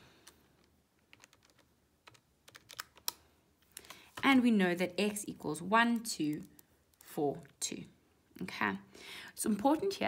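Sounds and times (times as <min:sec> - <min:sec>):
calculator keys clicking: 0:01.1 - 0:03.2.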